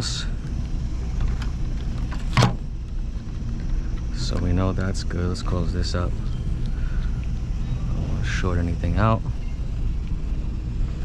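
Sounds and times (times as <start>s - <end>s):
steady low rumble: 0.0s - 11.0s.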